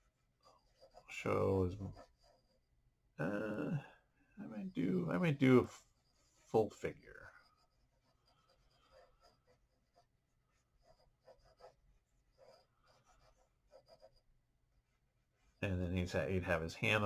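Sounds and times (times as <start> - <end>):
pencil scratching on paper: 0.0 - 17.0.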